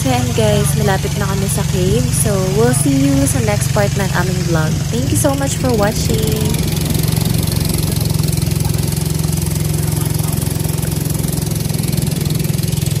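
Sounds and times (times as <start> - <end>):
boat engine running: 0.0 - 13.0.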